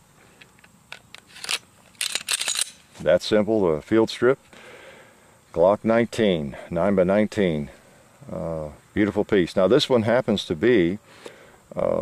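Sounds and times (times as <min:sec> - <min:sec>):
sharp metallic click: 0:00.9 - 0:03.0.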